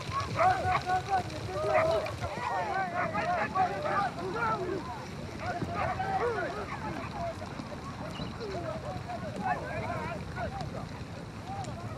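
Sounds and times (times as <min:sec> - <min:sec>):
voices calling out: 0:00.0 - 0:11.9.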